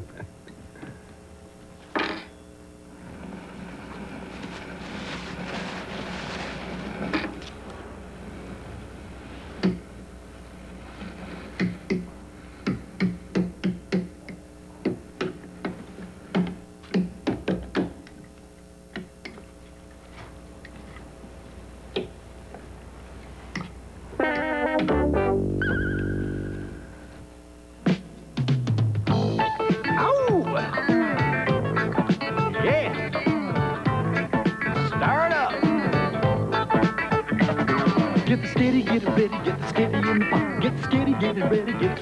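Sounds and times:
electrical hum: 0:00.0 - 0:42.0
hissy noise: 0:02.9 - 0:14.0, 0:21.5 - 0:42.0.

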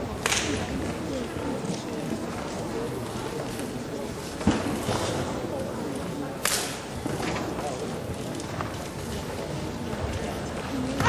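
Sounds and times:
murmur of voices: 0:00.0 - 0:11.0
sharp snap of uniform: 0:06.4 - 0:06.8.

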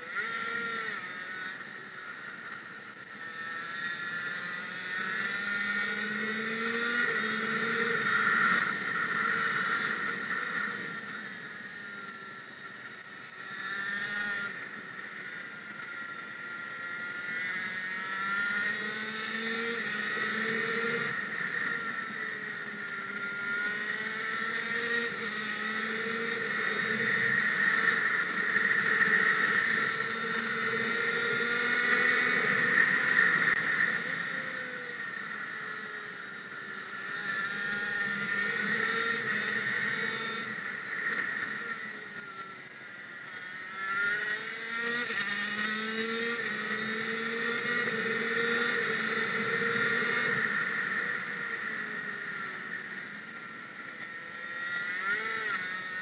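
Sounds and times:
race motorcycle engine: 0:00.0 - 0:56.0.

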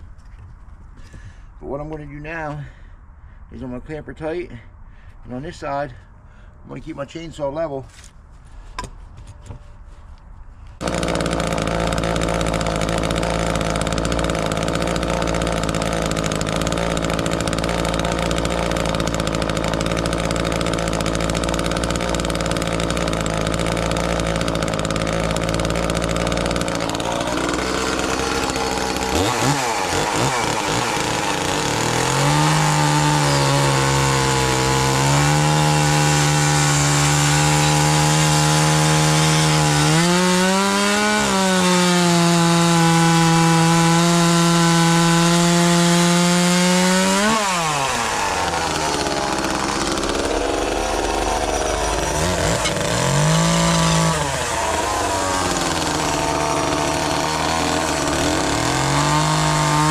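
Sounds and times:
chainsaw cutting wood: 0:10.8 - 0:59.9.

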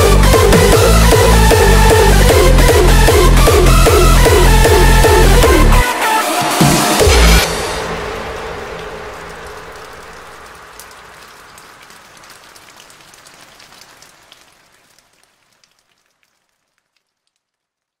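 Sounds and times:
steady rain hiss: 0:07.4 - 0:18.0
raindrop clicks: 0:09.2 - 0:18.0.

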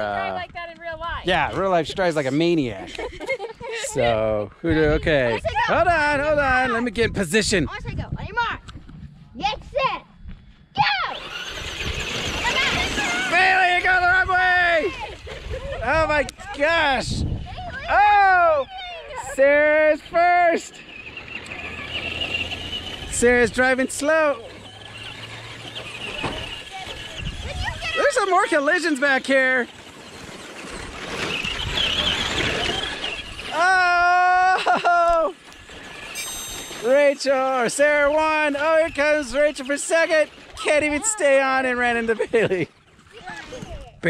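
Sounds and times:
rc car motor whine: 0:10.8 - 0:15.2, 0:15.8 - 0:42.2
tyres spraying loose dirt: 0:19.4 - 0:42.6
electric motor whine: 0:21.0 - 0:33.4.

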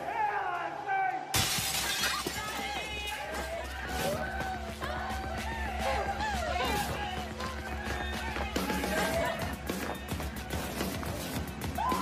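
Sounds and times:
glass shattering: 0:01.4 - 0:02.8.

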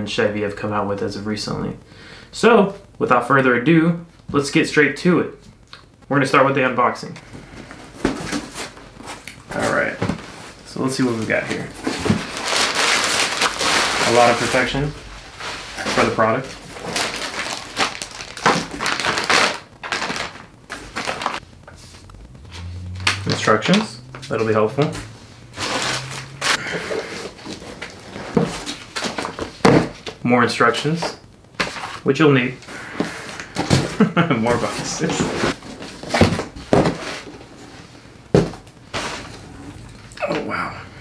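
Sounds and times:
packing material rustling: 0:07.2 - 0:30.2.

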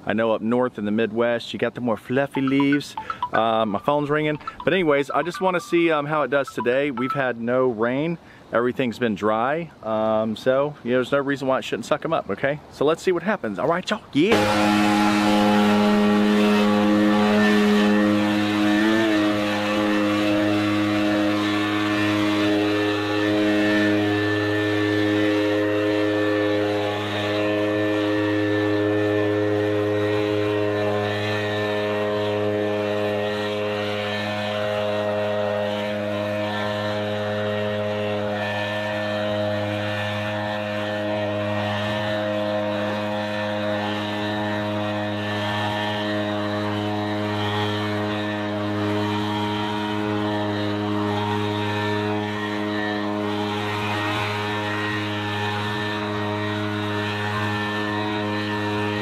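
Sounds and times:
leaf blower running: 0:14.3 - 0:59.0.

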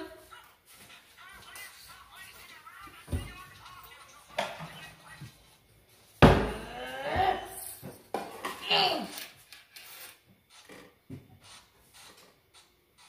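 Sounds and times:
loud thump: 0:06.2 - 0:06.7.

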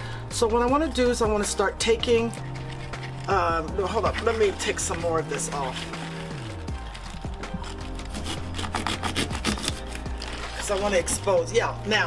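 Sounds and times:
background music: 0:00.0 - 0:12.0
stiff leaves tearing against a knife: 0:02.2 - 0:11.5.

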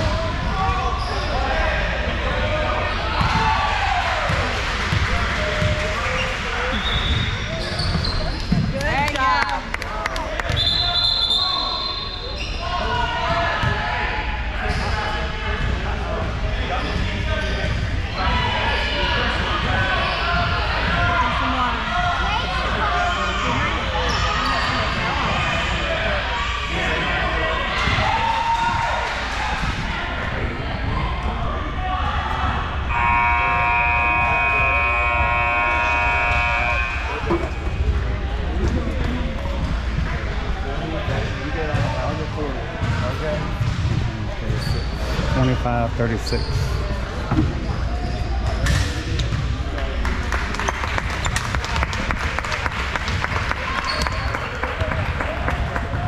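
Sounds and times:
chatter: 0:00.0 - 0:56.0
people talking: 0:00.0 - 0:56.0.

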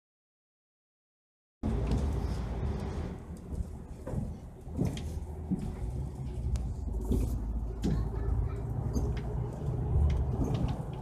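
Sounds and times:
vehicle road and engine rumble: 0:01.6 - 0:11.0
short squeaks or rattles: 0:08.6 - 0:09.4.

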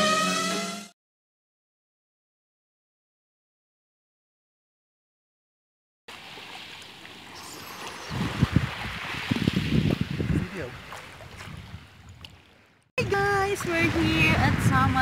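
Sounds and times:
water sloshing and splashing: 0:06.1 - 0:15.0.

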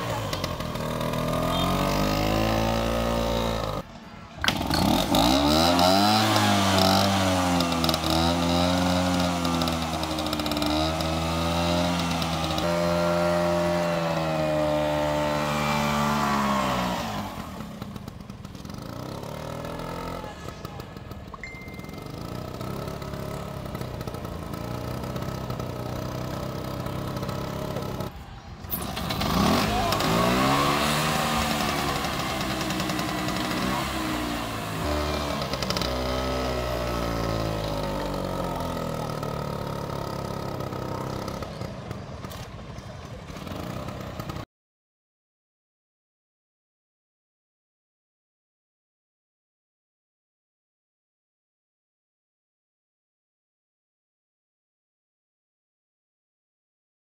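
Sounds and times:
scooter engine revving: 0:00.0 - 0:44.5.

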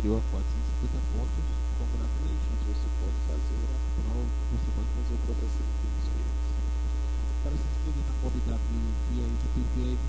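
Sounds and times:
loud electrical mains hum: 0:00.0 - 0:10.0.

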